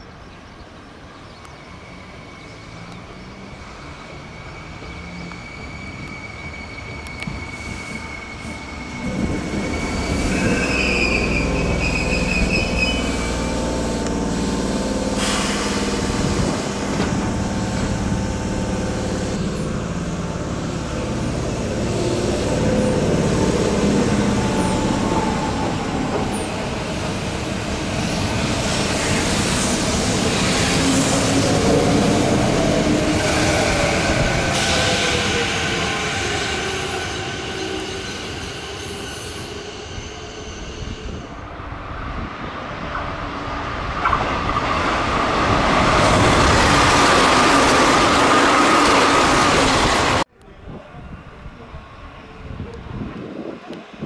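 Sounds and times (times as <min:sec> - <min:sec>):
train wheel squeal: 0:01.2 - 0:18.1, 0:21.2 - 0:41.6
train falling whine: 0:01.6 - 0:50.3.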